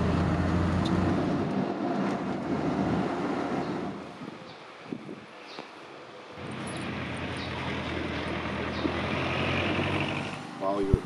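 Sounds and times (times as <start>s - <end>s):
heavy vehicle engine hum: 0.0s - 5.1s, 6.2s - 11.0s.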